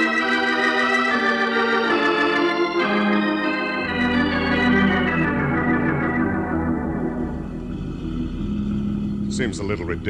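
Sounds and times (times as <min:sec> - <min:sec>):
organ music: 0:00.0 - 0:10.0.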